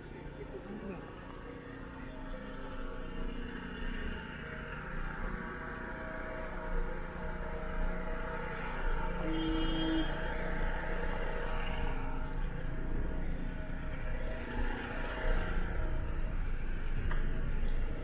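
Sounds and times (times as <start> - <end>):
car engines and tyres hum: 0.0 - 18.0.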